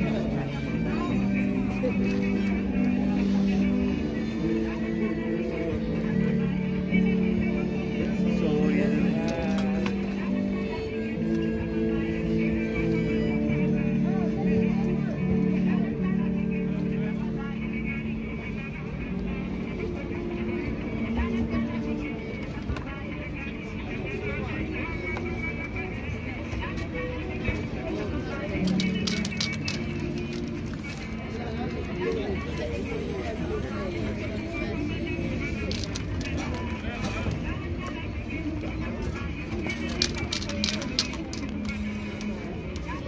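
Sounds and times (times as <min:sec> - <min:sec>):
people talking: 0:00.0 - 0:43.0
people's voices: 0:00.0 - 0:43.0
street traffic rumble: 0:00.0 - 0:43.0.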